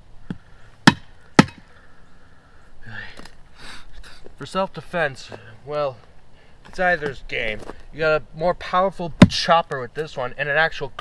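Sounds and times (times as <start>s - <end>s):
knife chopping into wood: 0.8s - 1.6s.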